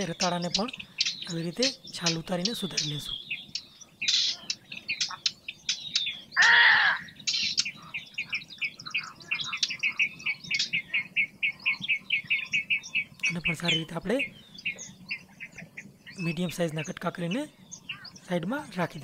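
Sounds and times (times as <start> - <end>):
loud pitched bird call: 0.0 - 16.3, 17.8 - 18.2
fast repeated bird chirps: 0.0 - 19.0
small birds chirping: 0.0 - 19.0.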